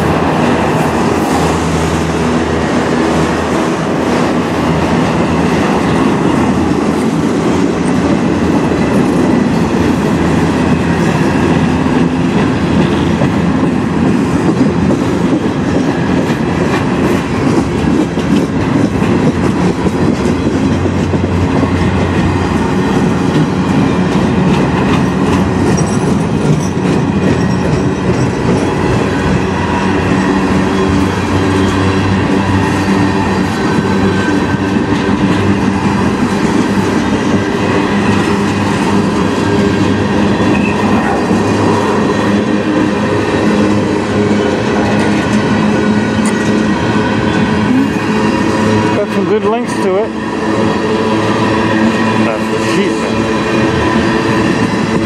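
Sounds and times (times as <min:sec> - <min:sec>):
freight train wheels clattering: 0:00.0 - 0:55.0.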